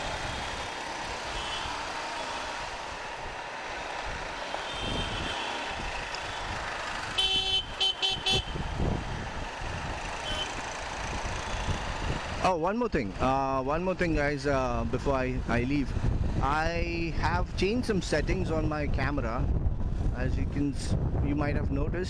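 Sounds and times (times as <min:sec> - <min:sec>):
motorcycle engine: 0:00.0 - 0:12.4
road noise: 0:00.0 - 0:21.2
vehicle horn honks: 0:01.4 - 0:01.8, 0:04.6 - 0:05.6, 0:07.2 - 0:08.6, 0:10.2 - 0:10.6.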